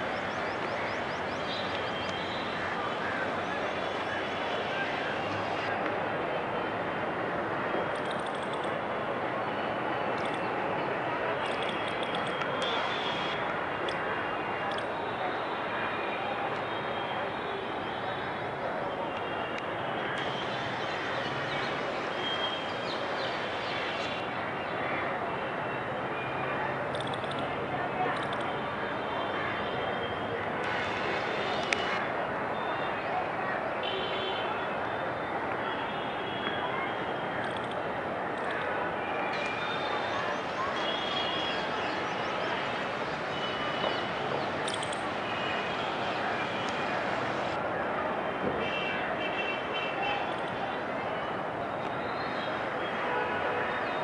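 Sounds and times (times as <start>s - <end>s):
faint far-off voices: 0.0s - 8.0s, 8.6s - 54.0s
distant traffic noise: 0.0s - 54.0s.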